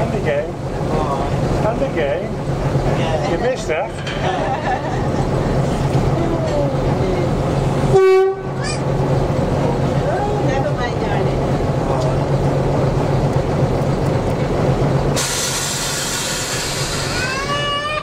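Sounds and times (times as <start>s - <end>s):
locomotive engine drone: 0.0s - 18.0s
locomotive horn blast: 7.8s - 8.8s.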